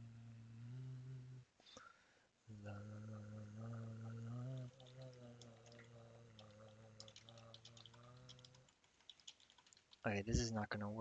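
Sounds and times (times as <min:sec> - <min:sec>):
person humming low note: 0:00.0 - 0:01.5, 0:02.5 - 0:08.6
keyboard typing: 0:04.7 - 0:10.0.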